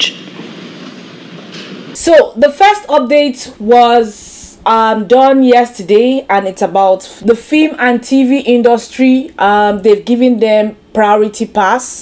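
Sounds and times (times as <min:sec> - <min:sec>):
large hall background noise: 0:00.0 - 0:02.1.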